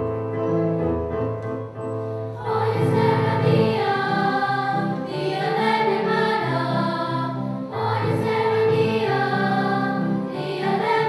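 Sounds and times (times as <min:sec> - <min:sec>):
children's choir singing: 0:02.4 - 0:11.0.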